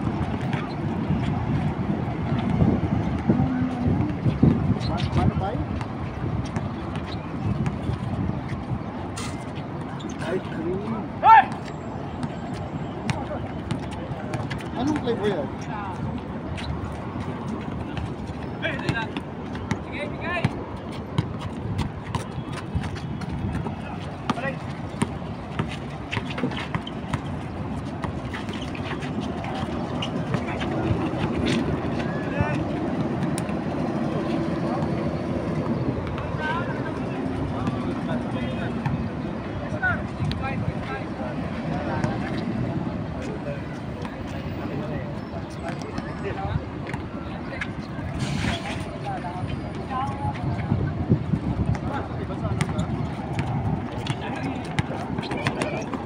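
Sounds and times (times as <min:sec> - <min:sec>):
road traffic hum: 0:00.0 - 0:56.0.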